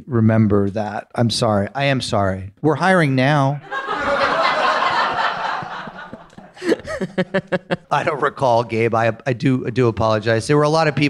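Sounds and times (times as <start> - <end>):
audience laughing: 3.6 - 8.2.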